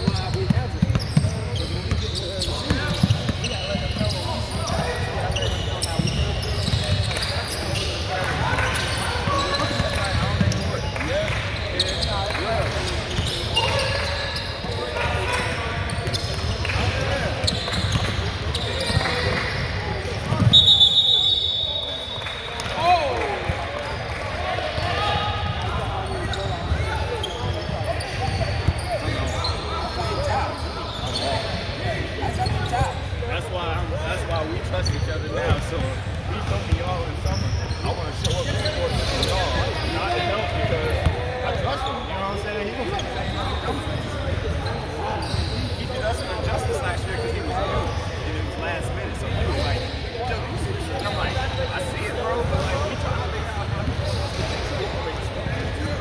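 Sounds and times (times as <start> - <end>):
sneakers squeaking on hardwood: 0.0 - 10.9, 11.8 - 22.8, 25.0 - 33.2, 42.8 - 48.2
referee whistle blast: 20.4 - 22.2.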